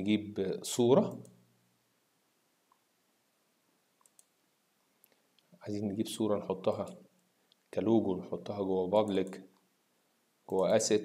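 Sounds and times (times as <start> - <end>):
computer mouse clicks: 4.0 - 4.4.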